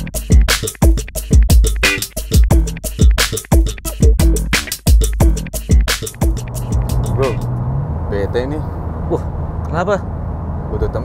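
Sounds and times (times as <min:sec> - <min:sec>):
music beat: 0:00.0 - 0:07.7
held low note: 0:06.2 - 0:09.5
car cabin road and engine hum: 0:06.2 - 0:11.0.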